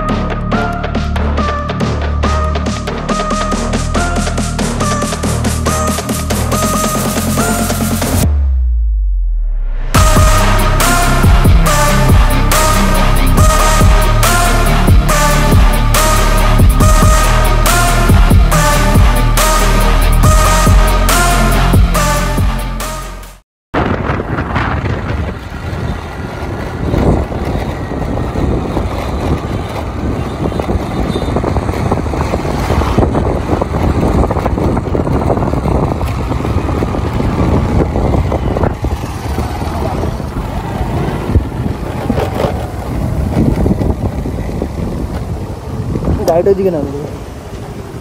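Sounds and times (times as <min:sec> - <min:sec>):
vehicle engine and road noise: 0:00.0 - 0:48.0
wind buffeting microphone: 0:23.8 - 0:48.0.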